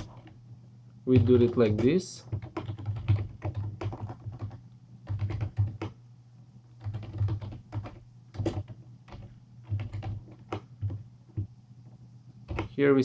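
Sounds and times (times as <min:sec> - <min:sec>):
computer keyboard typing: 0:01.1 - 0:06.0, 0:06.8 - 0:11.5, 0:12.5 - 0:12.8.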